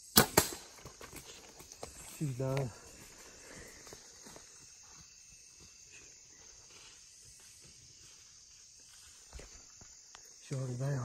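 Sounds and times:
arrow striking deer: 0.1s - 0.7s.

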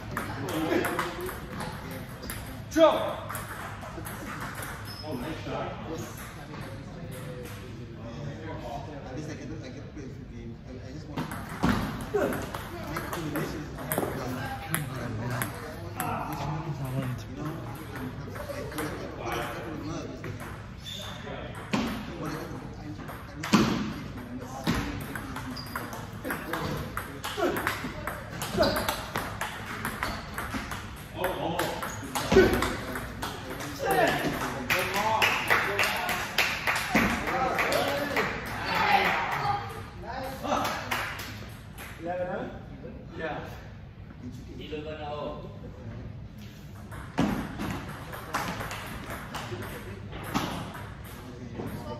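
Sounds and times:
people talking: 0.0s - 41.0s, 47.3s - 51.9s.

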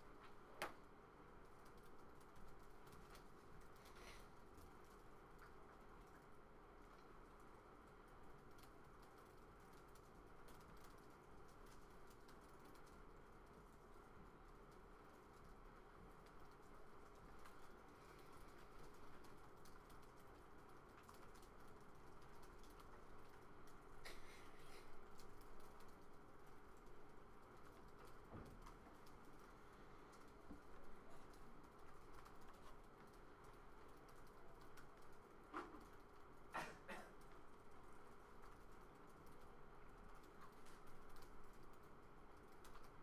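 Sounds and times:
low room hum: 0.0s - 43.0s.

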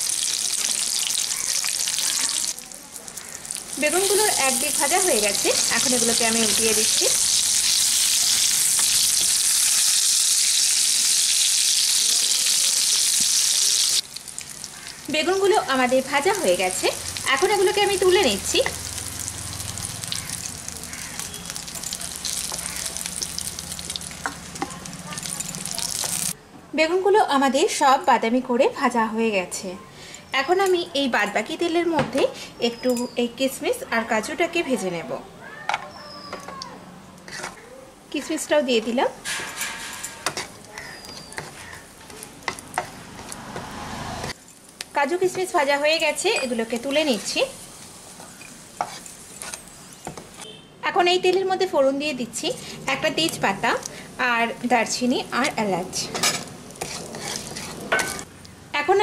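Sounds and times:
eggplants sizzling in oil: 0.0s - 26.4s, 44.3s - 59.0s.

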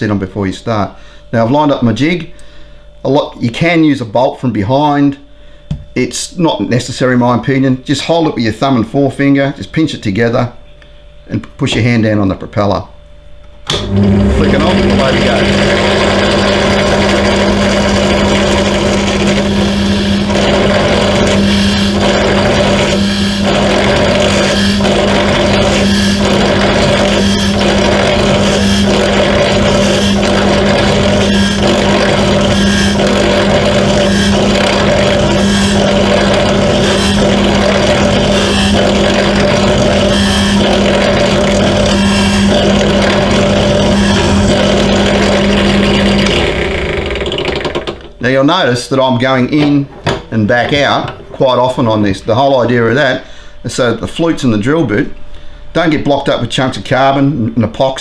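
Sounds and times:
drill press motor hum: 13.4s - 48.2s
drill bit drilling: 13.7s - 48.1s.

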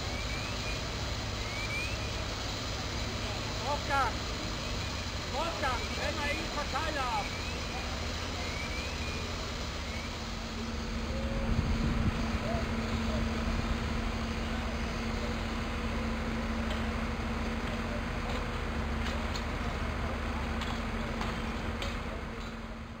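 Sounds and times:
broad hiss: 0.0s - 22.3s
fire engine droning: 0.0s - 23.0s.

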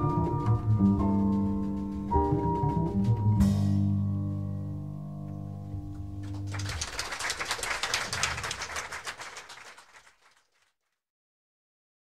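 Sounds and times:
audience applause: 6.2s - 10.7s.

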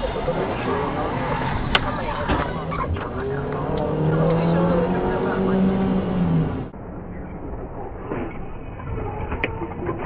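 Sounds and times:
car engine hum: 0.0s - 8.3s
road noise: 0.0s - 10.0s.

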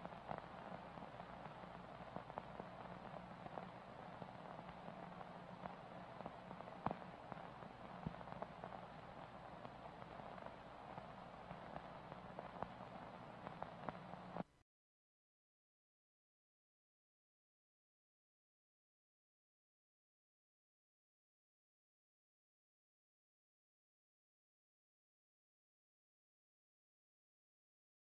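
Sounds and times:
crackling clicks: 0.0s - 14.4s
low steady hum: 0.0s - 14.6s
tape static hiss: 0.0s - 14.6s.

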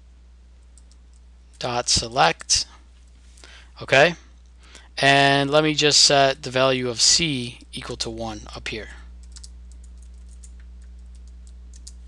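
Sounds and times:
low electrical hum: 0.0s - 12.0s
keyboard keystrokes: 9.2s - 12.0s.

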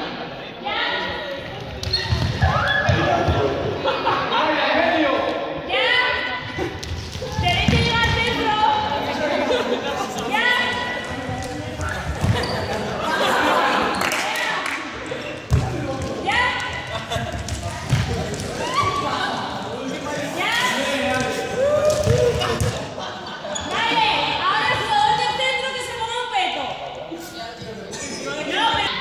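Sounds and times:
voices echoing: 0.0s - 29.0s
sneakers squeaking on floor: 1.5s - 3.4s, 10.6s - 13.0s, 23.5s - 24.0s
laughter: 3.8s - 4.7s, 9.2s - 10.2s, 12.4s - 14.0s, 16.9s - 17.4s, 22.5s - 23.8s.

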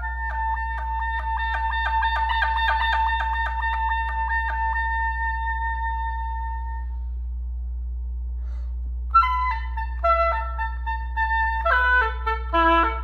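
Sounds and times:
solo clarinet: 0.0s - 7.1s, 9.1s - 13.0s.

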